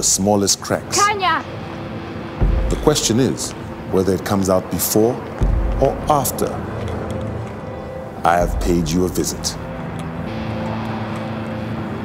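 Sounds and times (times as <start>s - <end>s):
city street traffic roar: 0.0s - 12.0s
quiet background music: 0.0s - 12.0s.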